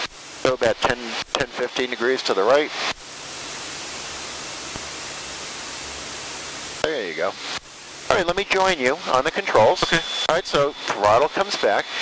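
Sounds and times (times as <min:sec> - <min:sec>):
aircraft engine noise: 0:00.0 - 0:12.0
cockpit airflow hiss: 0:00.0 - 0:12.0.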